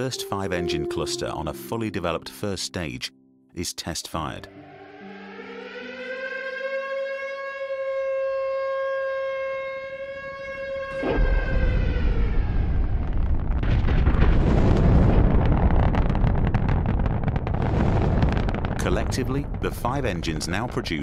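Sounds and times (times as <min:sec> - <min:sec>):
warning siren steady tone: 0:04.5 - 0:13.4
rocket engine roar: 0:10.2 - 0:21.0.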